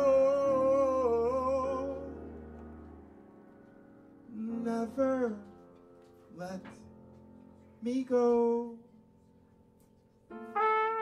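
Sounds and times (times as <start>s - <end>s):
jazz trumpet: 10.3s - 11.0s.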